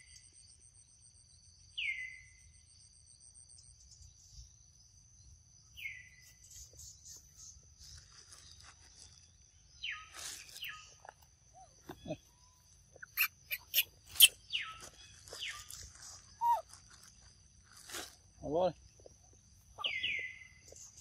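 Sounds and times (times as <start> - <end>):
rustling of grass and leaves: 6.3 - 21.0.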